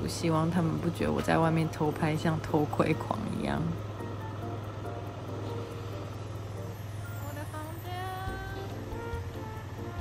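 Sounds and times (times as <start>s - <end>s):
engine idling: 0.0s - 10.0s
faint background music: 0.0s - 10.0s.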